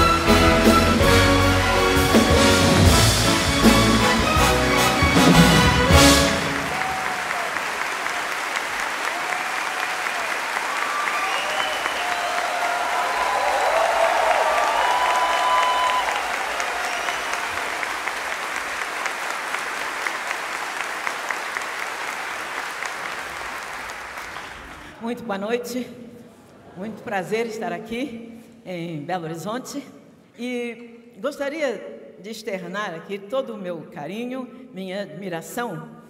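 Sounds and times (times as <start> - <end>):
audience applauding: 0.0 - 25.0.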